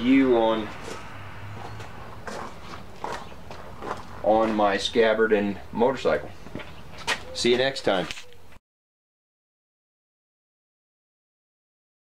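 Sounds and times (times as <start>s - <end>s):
footsteps on gravel: 0.3s - 5.2s, 6.0s - 8.3s.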